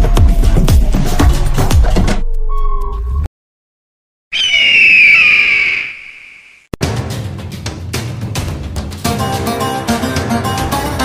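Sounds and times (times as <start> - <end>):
shrill falling cry: 4.4 - 6.4.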